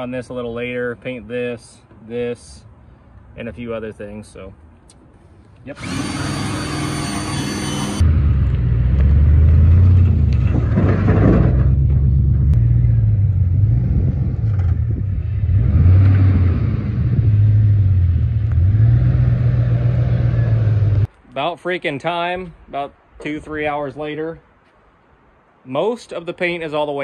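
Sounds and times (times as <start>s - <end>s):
cordless drill whining: 5.7s - 8.0s
truck engine revving: 5.8s - 21.1s.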